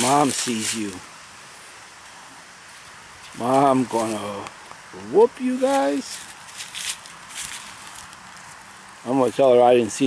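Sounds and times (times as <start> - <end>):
paws scratching in mud and leaves: 0.0 - 1.1, 5.4 - 9.0.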